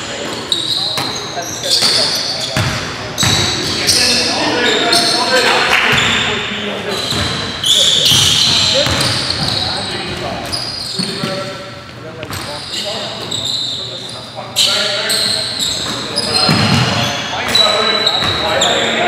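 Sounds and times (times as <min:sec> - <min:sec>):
sneakers squeaking on hardwood: 0:00.0 - 0:19.0
players calling out: 0:00.4 - 0:19.0
basketball bouncing: 0:02.6 - 0:03.5, 0:07.1 - 0:07.4, 0:08.1 - 0:10.2.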